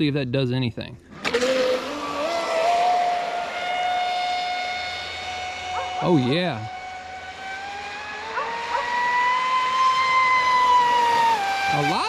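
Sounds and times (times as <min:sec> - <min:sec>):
rc boat motor whine: 0:01.1 - 0:12.0.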